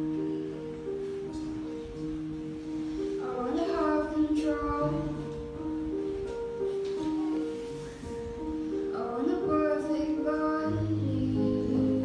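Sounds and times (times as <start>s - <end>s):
young person singing into microphone: 3.2s - 5.6s, 8.9s - 12.0s.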